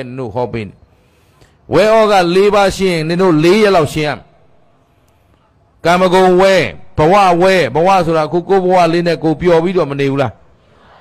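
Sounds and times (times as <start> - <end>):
man preaching: 0.0 - 0.8, 1.7 - 4.5, 5.8 - 10.5.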